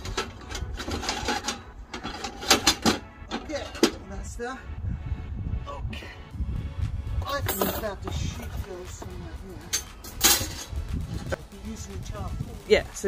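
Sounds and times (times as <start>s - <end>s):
metal clanks and clinks: 0.0s - 4.0s, 7.4s - 8.2s, 9.7s - 10.8s
wind rumble on microphone: 4.0s - 13.0s.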